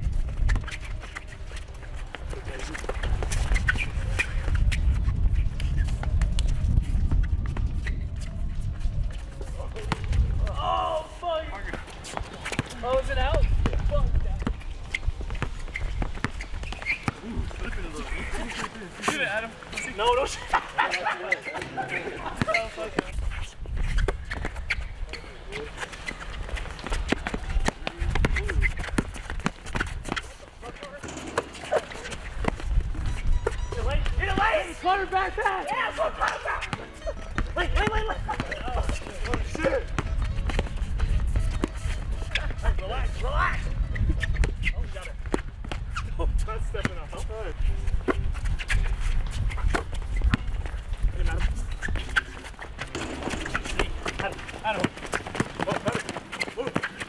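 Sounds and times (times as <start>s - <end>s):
shoes on court: 0.0s - 57.0s
players calling out: 15.7s - 23.5s, 24.2s - 43.8s, 51.9s - 57.0s
basketball bouncing: 31.0s - 33.7s, 52.8s - 57.0s.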